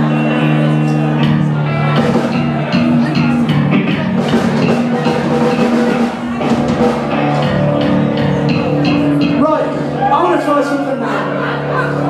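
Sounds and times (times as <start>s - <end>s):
drum kit beat: 0.0s - 10.1s
electric guitars and bass: 0.0s - 12.0s.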